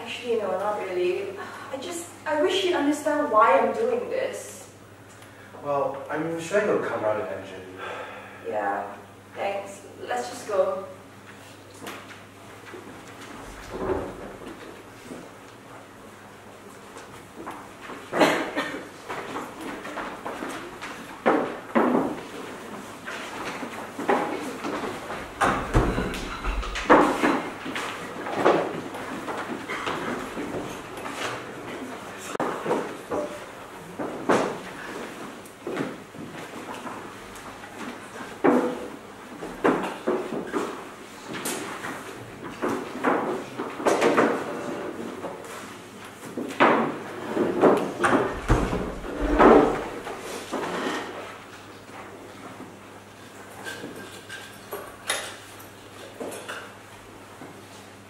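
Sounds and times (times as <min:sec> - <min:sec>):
furniture knocking and scraping: 0:23.6 - 0:31.4, 0:46.3 - 0:51.2.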